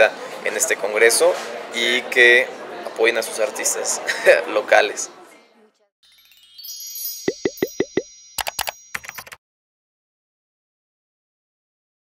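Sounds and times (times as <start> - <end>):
bubbly rising pops: 7.3 - 8.0.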